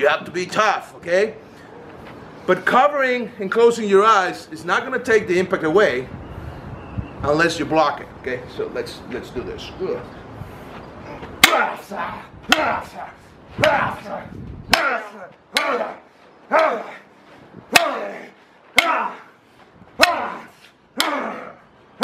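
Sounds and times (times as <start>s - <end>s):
weapon striking baton: 11.4s - 11.8s.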